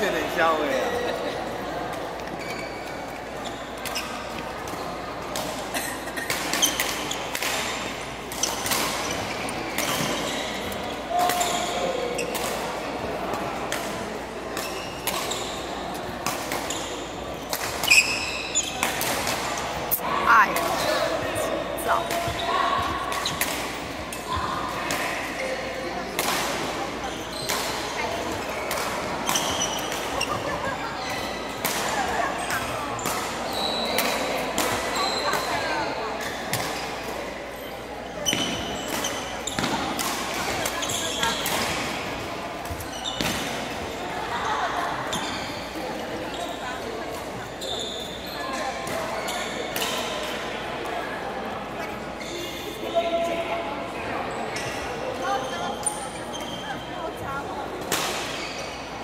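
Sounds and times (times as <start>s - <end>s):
shoes squeaking on court floor: 0.0s - 25.9s, 26.7s - 50.5s, 51.7s - 53.1s, 54.4s - 57.5s, 58.1s - 59.0s
background chatter: 0.0s - 59.0s
racket hitting shuttlecock: 38.3s - 42.0s.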